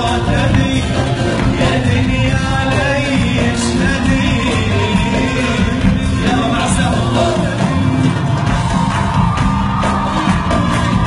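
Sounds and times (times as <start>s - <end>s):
man singing into microphone: 0.0s - 8.3s
drum kit beat: 0.0s - 11.0s
live pop band: 0.0s - 11.0s
crowd voices and whoops: 7.4s - 11.0s.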